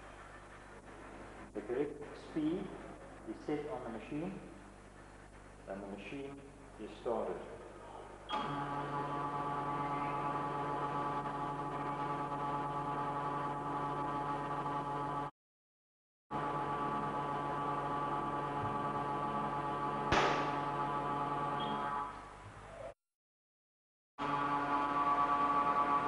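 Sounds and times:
testing machine drive humming: 0.0 - 15.3, 16.3 - 22.2.

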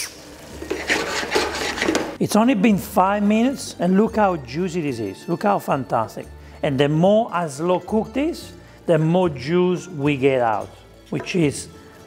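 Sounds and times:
wooden spoon scraping steel pan: 0.6 - 2.2.

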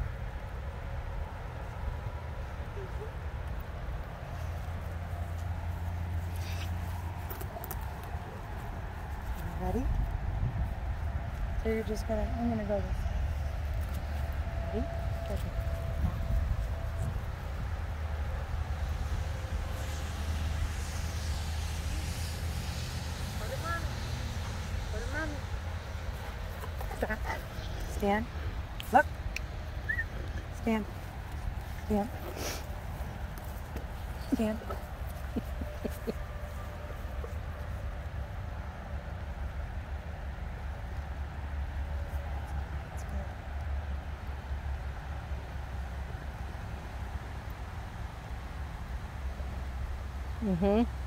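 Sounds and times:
wind buffeting microphone: 7.0 - 36.2.

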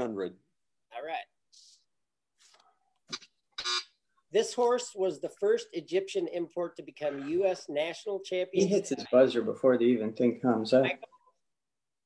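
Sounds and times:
electronic buzzer: 3.6 - 3.9.

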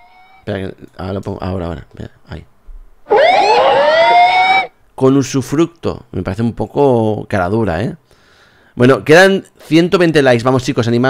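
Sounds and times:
wail gliding upward in pitch: 3.1 - 4.7.

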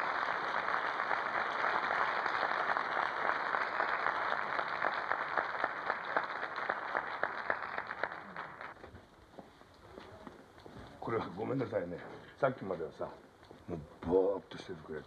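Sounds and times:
audience applauding: 0.0 - 8.8.

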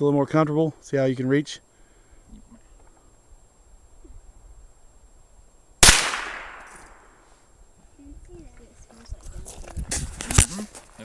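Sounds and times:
rifle shot with echo: 5.8 - 7.2.

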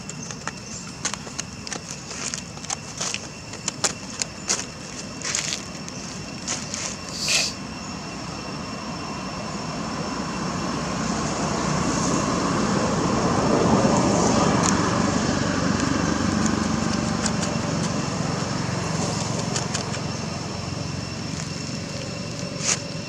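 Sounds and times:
engine passing by: 9.2 - 23.0.

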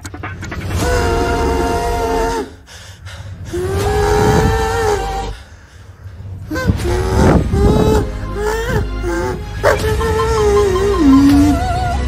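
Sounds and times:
low rumble: 0.0 - 12.0
kazoo playing long notes: 10.0 - 12.0.

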